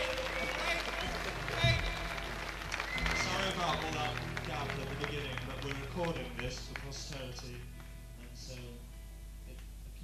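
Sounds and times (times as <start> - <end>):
scattered claps: 0.0 - 7.9.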